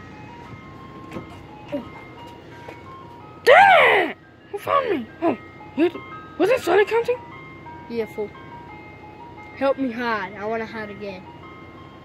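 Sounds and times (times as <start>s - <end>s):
simple chime melody: 4.1s - 12.0s.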